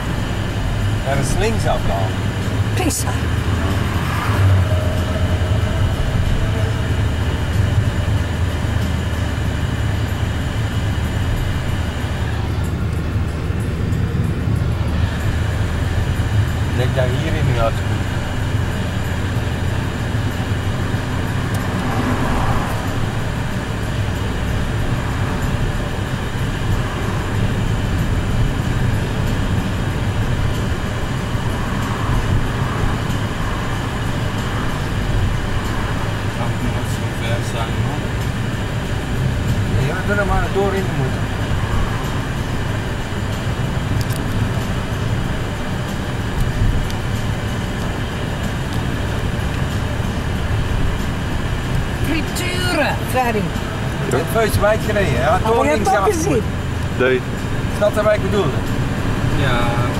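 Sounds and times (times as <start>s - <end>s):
car engine and road rumble: 0.0s - 59.9s.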